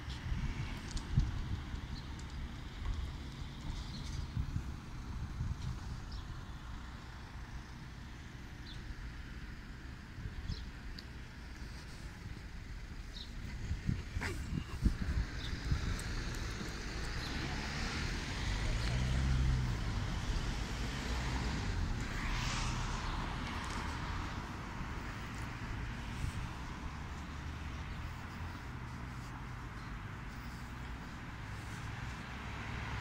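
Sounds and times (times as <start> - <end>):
cars passing: 0.0 - 33.0
road traffic hum: 0.0 - 33.0.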